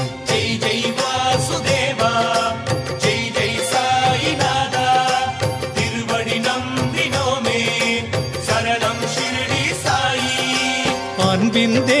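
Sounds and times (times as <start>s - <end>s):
steady percussion beat: 0.0s - 12.0s.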